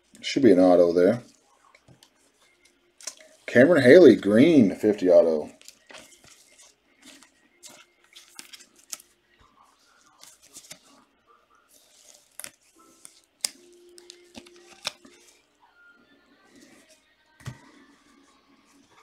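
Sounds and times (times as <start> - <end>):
rustles of cards and plastic: 0.0 - 15.5.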